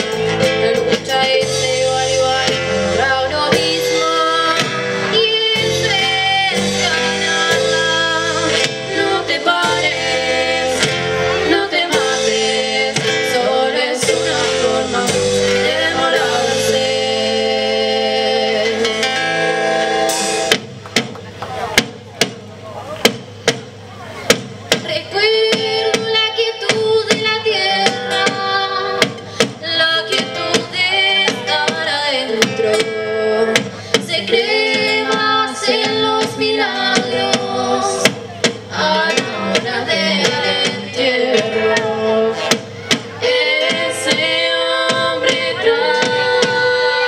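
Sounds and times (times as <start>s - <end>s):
live band with singing: 0.0s - 47.0s.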